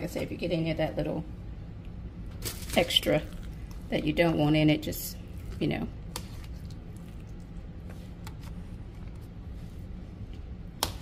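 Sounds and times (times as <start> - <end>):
steady low hum: 0.0 - 11.0
spoon stirring wet dressing: 5.2 - 9.6.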